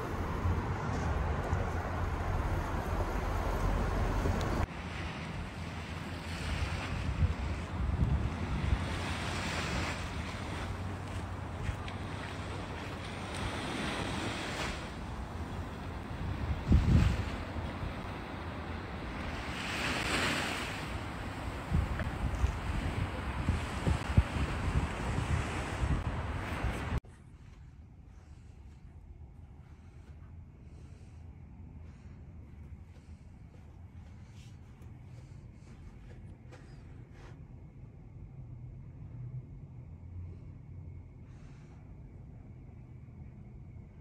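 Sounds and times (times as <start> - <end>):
wind buffeting microphone: 0.0 - 27.0
vehicle rumble: 0.0 - 44.0
small waves washing on sand: 3.6 - 27.0.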